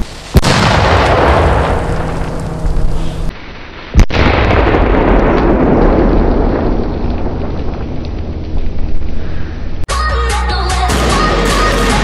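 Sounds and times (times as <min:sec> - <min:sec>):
noisy rumble: 0:00.0 - 0:03.4
firecracker bang: 0:00.0 - 0:08.0.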